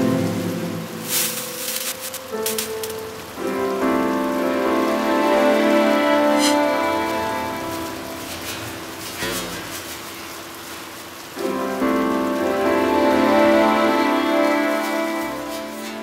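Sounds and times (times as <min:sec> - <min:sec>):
string ensemble sustained chords: 0:00.0 - 0:02.0, 0:02.6 - 0:09.4, 0:11.4 - 0:16.0
rain falling: 0:00.0 - 0:16.0.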